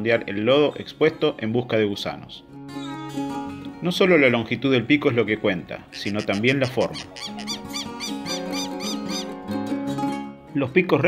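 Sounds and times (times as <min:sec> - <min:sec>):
background music with held notes: 0:00.0 - 0:11.0
bird squeaky calls: 0:05.9 - 0:09.4.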